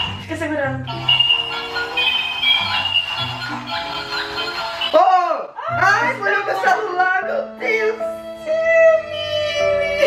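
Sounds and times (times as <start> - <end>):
electronic toy melody: 0.0 - 5.1.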